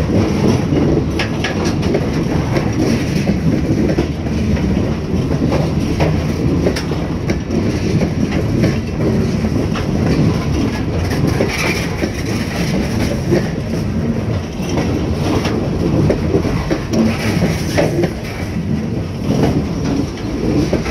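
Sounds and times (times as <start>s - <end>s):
steel wheels rumbling on rails: 0.0s - 20.9s
wheels clicking over rail joints: 0.0s - 20.9s.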